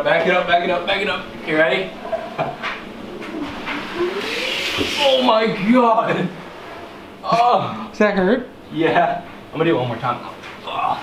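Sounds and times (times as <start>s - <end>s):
hoverboard hum: 0.4s - 7.2s.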